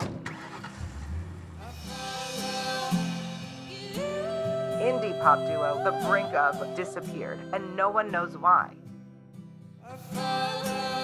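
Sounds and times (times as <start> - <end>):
low rumble: 0.7 - 2.0.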